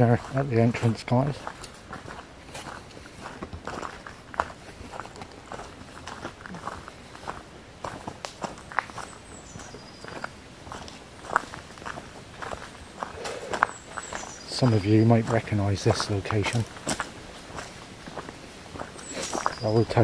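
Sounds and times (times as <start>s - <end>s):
footsteps crunching on leaf litter: 0.0s - 20.0s.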